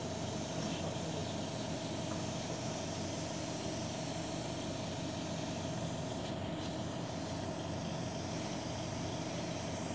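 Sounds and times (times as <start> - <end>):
even hiss: 0.0 - 9.9
machine hum with steady tone: 0.0 - 9.9.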